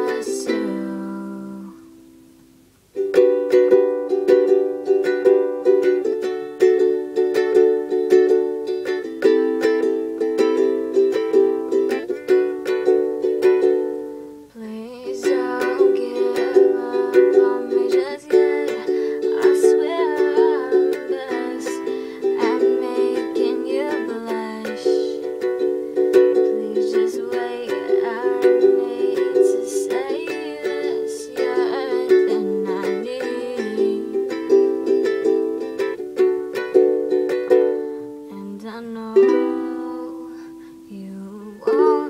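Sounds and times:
ukulele strumming chords: 0.0 - 42.0.

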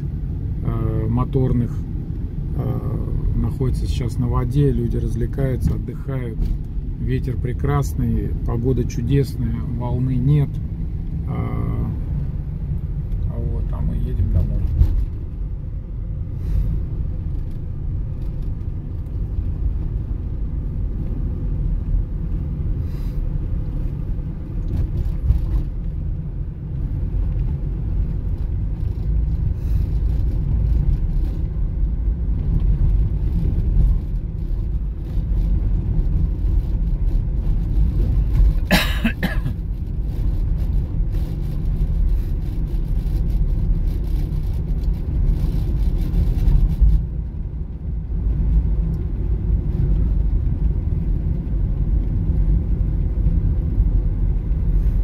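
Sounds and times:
car cabin road and engine rumble: 0.0 - 55.0.

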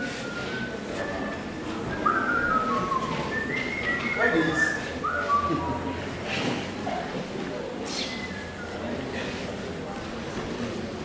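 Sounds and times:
person whistling short notes: 0.0 - 6.0, 7.9 - 8.8.

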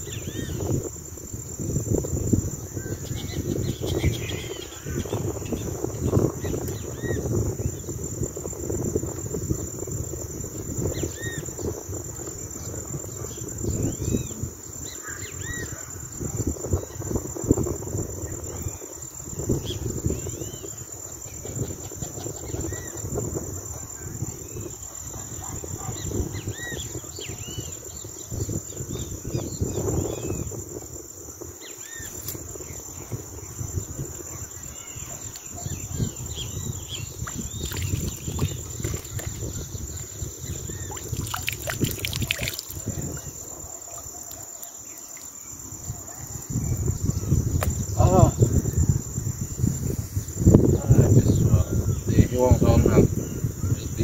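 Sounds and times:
insects chorus: 0.0 - 54.0.

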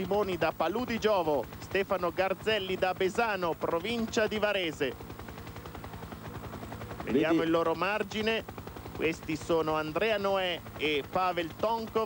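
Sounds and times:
helicopter rotor chop: 0.0 - 12.0.

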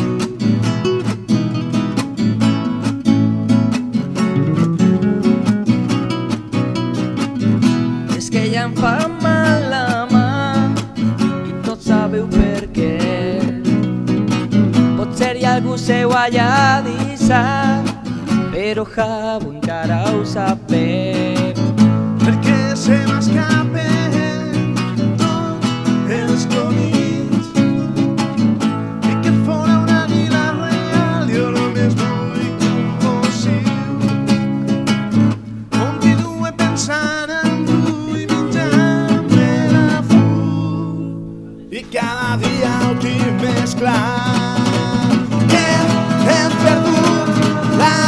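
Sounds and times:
strummed acoustic guitar: 0.0 - 48.0
person singing: 8.0 - 14.0, 14.9 - 28.0, 29.1 - 34.3, 35.7 - 48.0.

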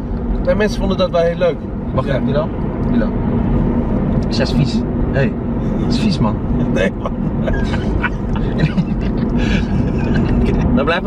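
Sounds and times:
car cabin road and engine noise: 0.0 - 11.0
people laughing: 6.6 - 10.6.

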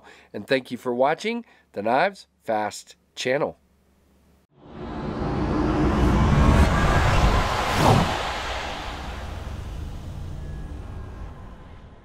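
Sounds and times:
deep rumble: 4.6 - 12.0
sharp falling sweep: 4.6 - 12.0
whoosh: 4.6 - 12.0.

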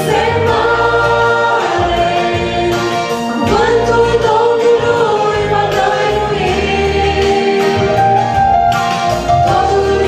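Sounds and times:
two women singing in duet: 0.0 - 8.3, 9.3 - 10.0
instrumental accompaniment: 0.0 - 10.0.

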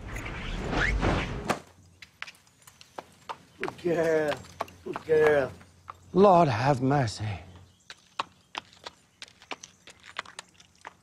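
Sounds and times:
horse hooves on hard ground: 2.0 - 11.0.

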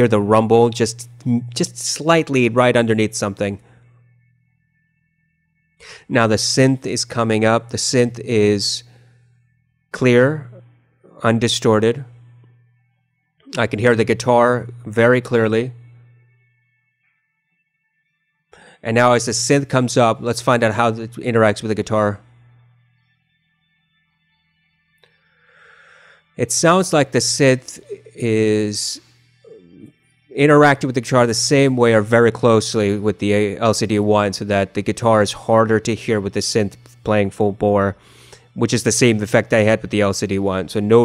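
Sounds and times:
faint high hum: 0.0 - 17.1, 18.6 - 41.0
faint breath drawn in: 5.8 - 6.1, 18.5 - 18.8, 25.1 - 26.3, 38.0 - 38.6
quick intake of breath: 25.4 - 26.2.

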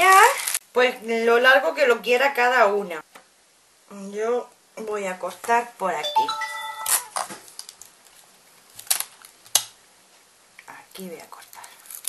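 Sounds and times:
chime of held notes: 6.0 - 7.2.

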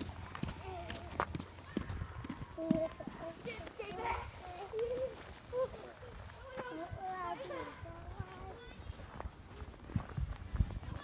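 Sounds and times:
children's voices: 0.0 - 11.0
footsteps crunching through snow: 0.0 - 11.0.

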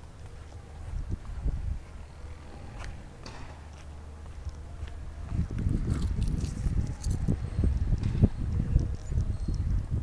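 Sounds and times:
low rumble on microphone: 0.0 - 10.0
footsteps scuffing: 2.7 - 6.9.

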